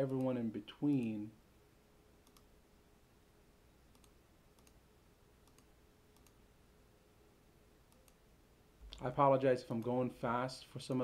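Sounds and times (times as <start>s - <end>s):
computer mouse clicks: 0.0s - 1.2s, 2.2s - 2.5s, 3.9s - 4.8s, 5.4s - 6.4s, 7.9s - 8.2s.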